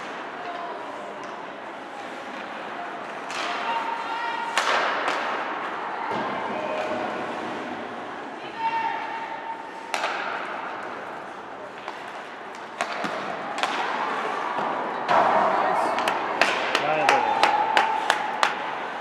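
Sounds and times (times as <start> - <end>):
hockey sticks and puck clacking: 0.0 - 8.1, 8.9 - 19.0
skates scraping on ice: 0.0 - 19.0.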